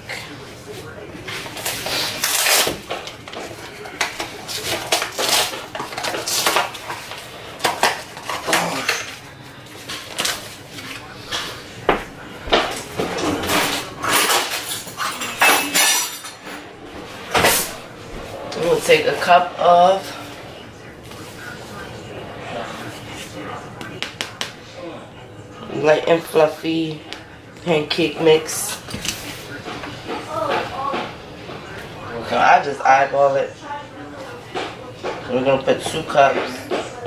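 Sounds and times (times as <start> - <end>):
dishes and cutlery clinking: 1.2 - 20.4.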